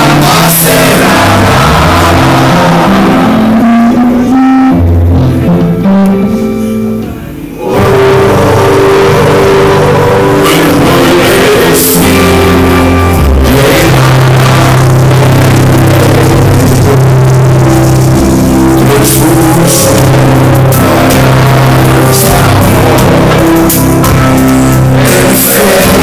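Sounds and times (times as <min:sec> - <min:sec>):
held bass and keyboard notes: 0:00.0 - 0:26.0
loud live rock band: 0:00.0 - 0:26.0.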